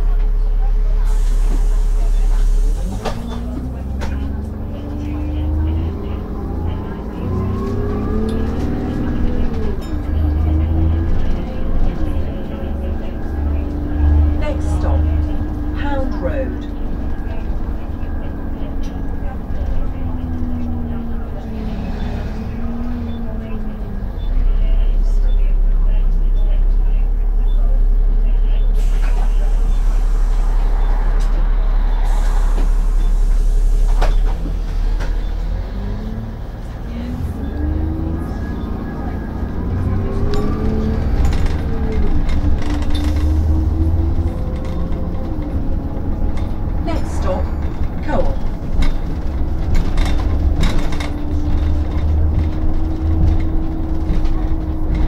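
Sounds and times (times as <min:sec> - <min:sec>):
bus engine and road rumble: 0:00.0 - 0:55.0.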